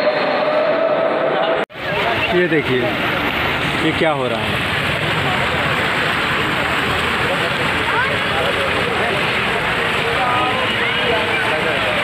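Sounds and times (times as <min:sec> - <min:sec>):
fountain jets splashing into pool: 0:01.7 - 0:12.0.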